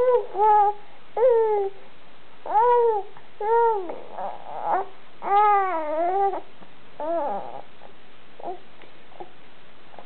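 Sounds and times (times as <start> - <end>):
baby babbling: 0.0 - 1.8, 2.5 - 7.7.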